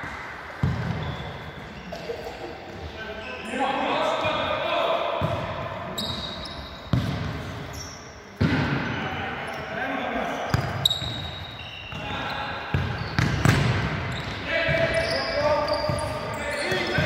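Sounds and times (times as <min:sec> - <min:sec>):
ball kicked and bouncing in hall: 0:00.0 - 0:01.8, 0:05.1 - 0:07.7, 0:08.4 - 0:08.8, 0:10.5 - 0:17.0
shoes squeaking on court: 0:00.6 - 0:02.0, 0:05.9 - 0:08.2, 0:09.5 - 0:17.0.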